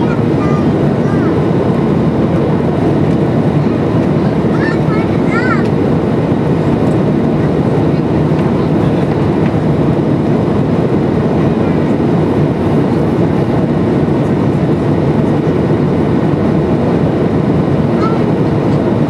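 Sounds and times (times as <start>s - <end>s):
jet engines rumbling: 0.0s - 19.0s
rushing airflow: 0.0s - 19.0s.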